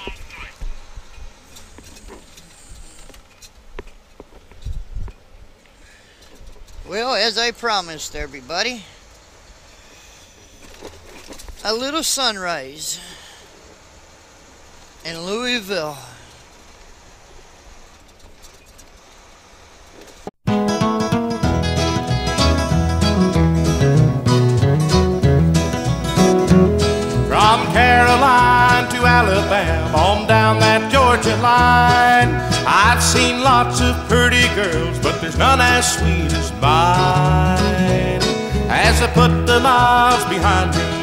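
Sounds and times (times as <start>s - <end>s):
truck engine and tyres droning: 0.0s - 12.2s, 13.4s - 20.3s
truck engine and road rumble: 0.0s - 41.0s.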